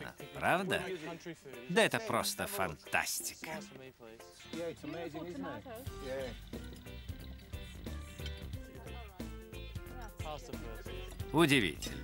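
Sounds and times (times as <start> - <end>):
background music with plucked notes: 0.0 - 12.0.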